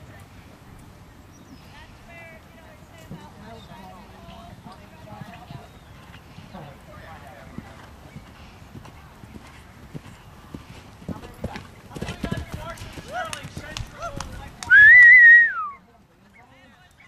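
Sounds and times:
horse hoofbeats on sand: 3.0 - 14.7.

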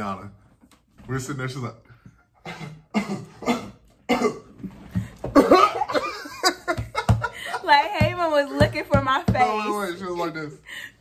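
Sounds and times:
person coughing: 2.4 - 4.6.

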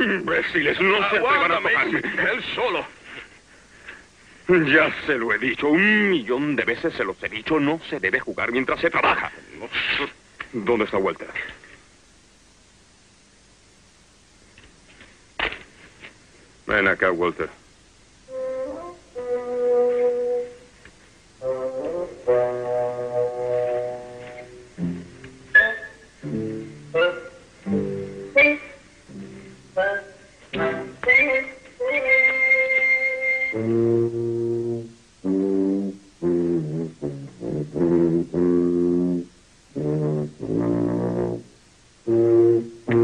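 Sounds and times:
brass horn playing slow tune: 18.3 - 20.7, 21.4 - 43.0.

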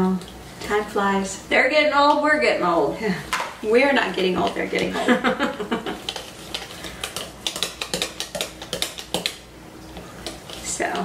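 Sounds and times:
whisk clinking against ceramic bowl: 5.8 - 9.4.

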